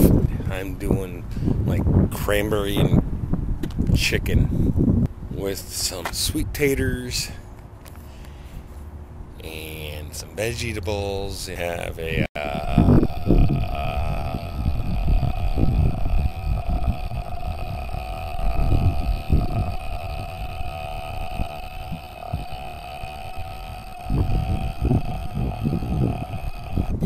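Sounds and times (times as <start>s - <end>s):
low uneven rumbling: 12.1s - 27.0s
steady machine hum: 12.4s - 27.0s.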